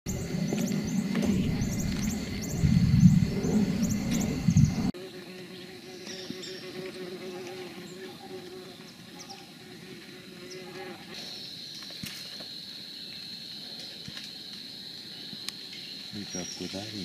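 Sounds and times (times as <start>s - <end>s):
heavy low rumble: 0.1s - 4.9s
steady low hum: 0.1s - 5.0s
insects chirping: 0.1s - 17.0s.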